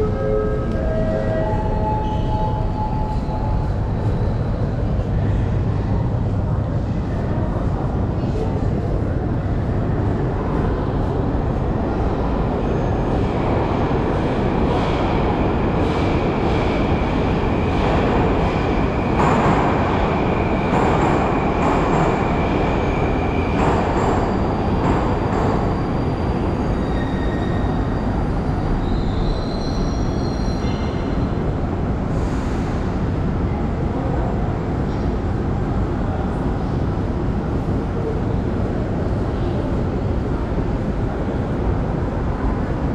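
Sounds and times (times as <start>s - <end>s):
high squeal of train: 0.0s - 42.9s
metro train running: 0.0s - 42.9s.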